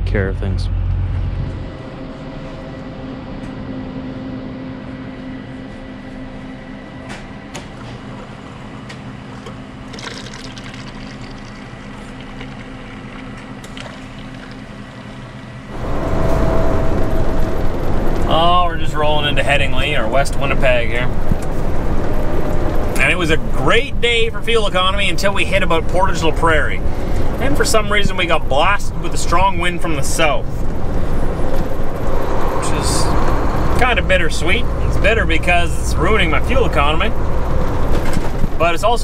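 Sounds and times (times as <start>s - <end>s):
truck cab road noise: 0.0s - 4.4s, 12.0s - 39.0s
coffee machine humming: 6.4s - 23.8s
coffee streaming into cup: 9.9s - 15.2s.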